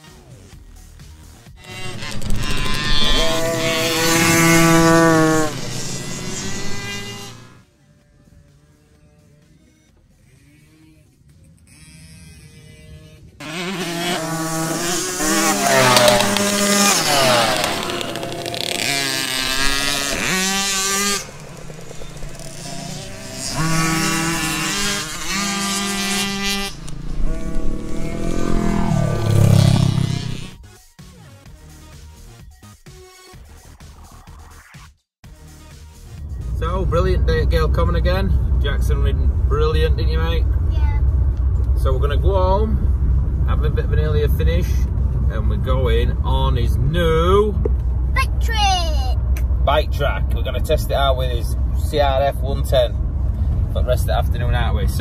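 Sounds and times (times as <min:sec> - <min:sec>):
motocross bikes revving past: 0:01.6 - 0:07.6, 0:08.6 - 0:30.6.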